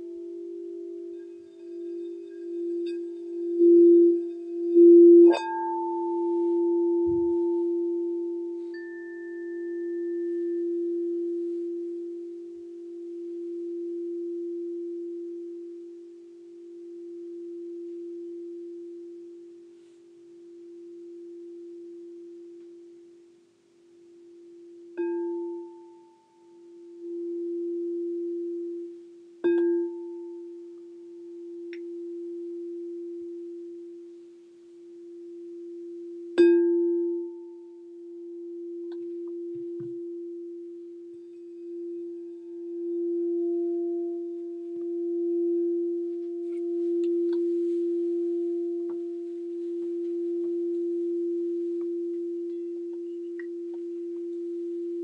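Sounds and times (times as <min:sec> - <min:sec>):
crystal singing bowl ringing: 0:00.0 - 0:55.0.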